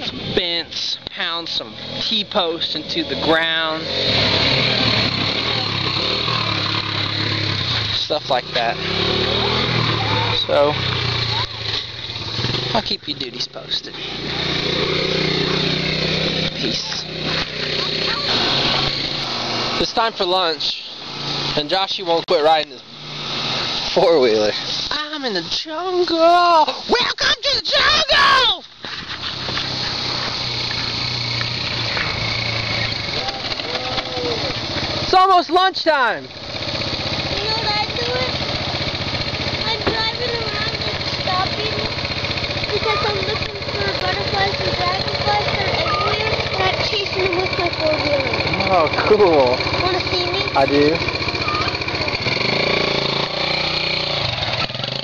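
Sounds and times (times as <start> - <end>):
atv engine driving past: 0.0 - 55.0.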